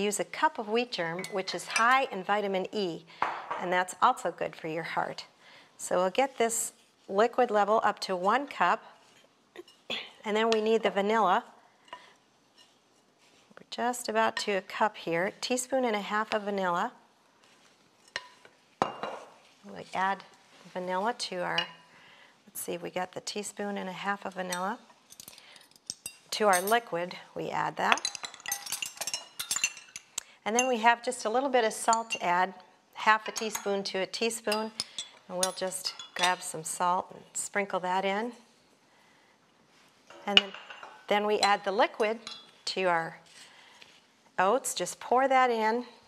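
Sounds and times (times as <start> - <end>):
utensil clinking against a dish: 27.9 - 30.8, 34.5 - 36.5.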